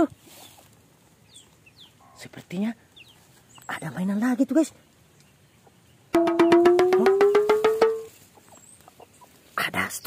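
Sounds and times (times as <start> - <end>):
fast even ticking: 6.2 - 8.1.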